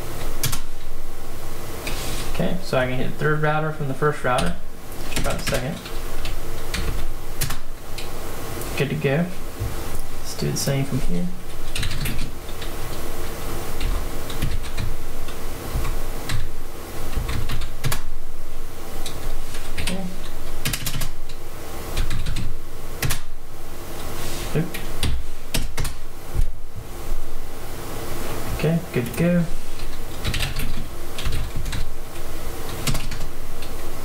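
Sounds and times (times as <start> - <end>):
computer keyboard typing: 0.4 - 0.8, 4.4 - 8.1, 11.6 - 13.0, 13.8 - 14.9, 15.8 - 16.5, 17.1 - 18.0, 19.0 - 21.1, 22.0 - 23.3, 24.7 - 26.0, 29.8 - 31.9, 32.7 - 33.3.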